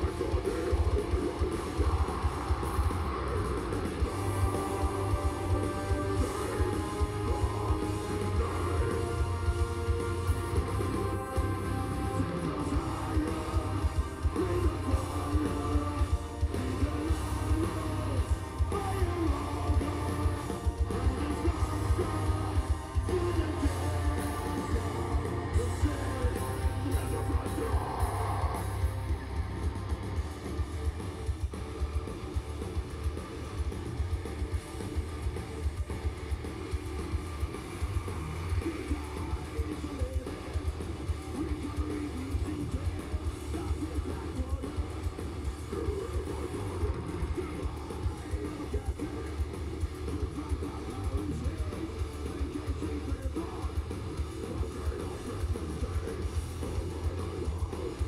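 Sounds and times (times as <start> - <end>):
metal band playing live: 0.0 - 58.0.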